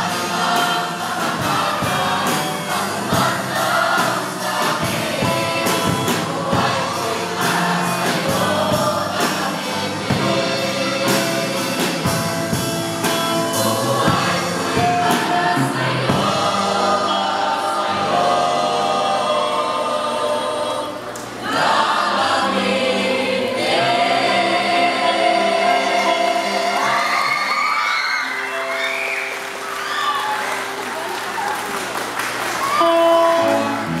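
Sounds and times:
mixed choir singing: 0:00.0 - 0:29.0.

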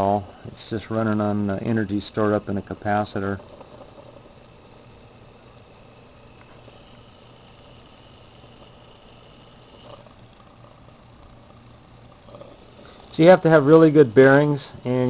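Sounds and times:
faint motor hiss: 0:00.0 - 0:15.0
low motor hum: 0:00.0 - 0:15.0.

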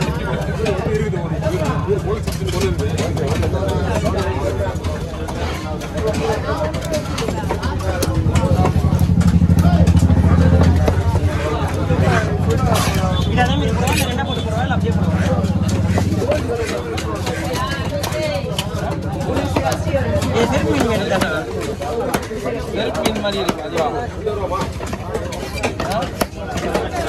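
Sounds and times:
engine hum: 0:00.0 - 0:21.7
cleaver chopping fish: 0:02.4 - 0:14.2, 0:15.0 - 0:27.0.

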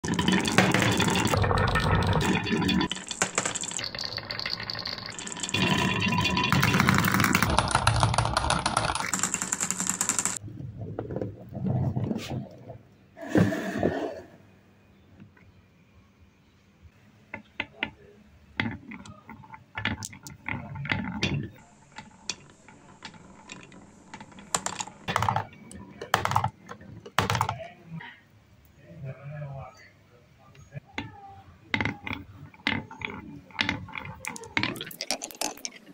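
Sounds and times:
marbles rolling on wooden tracks: 0:00.0 - 0:10.4, 0:18.6 - 0:27.7, 0:31.0 - 0:35.9.

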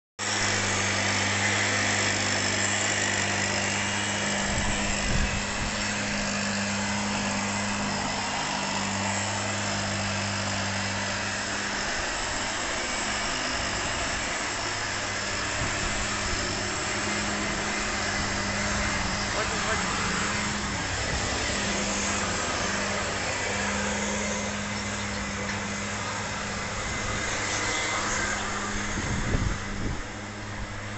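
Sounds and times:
mist blower engine running: 0:00.2 - 0:30.9.

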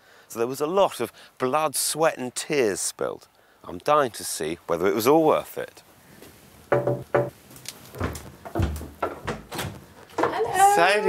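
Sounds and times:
door opening thuds and clicks: 0:06.7 - 0:07.4, 0:08.0 - 0:10.4
knocks on glass door: 0:06.7 - 0:07.4.

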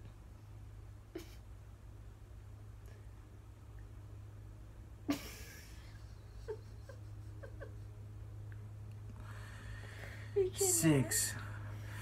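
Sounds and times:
low hum: 0:00.0 - 0:12.0
stifled giggles: 0:05.1 - 0:08.0.

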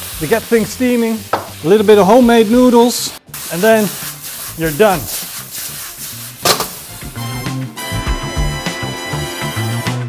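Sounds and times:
stir-fry sizzling in a wok: 0:00.0 - 0:08.0
low background music: 0:00.0 - 0:10.0.

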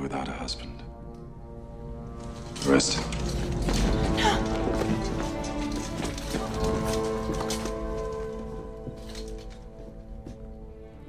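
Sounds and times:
tense orchestral film score: 0:00.0 - 0:11.0.

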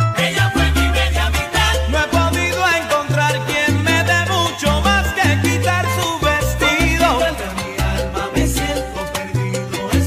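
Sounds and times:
bass line: 0:00.0 - 0:10.0
instrumental salsa music: 0:00.0 - 0:10.0.

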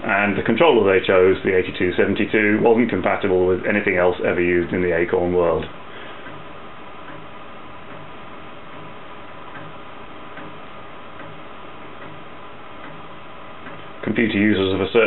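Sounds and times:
floppy disc drive running: 0:00.0 - 0:15.0
light ticks of drive head: 0:08.7 - 0:10.6.

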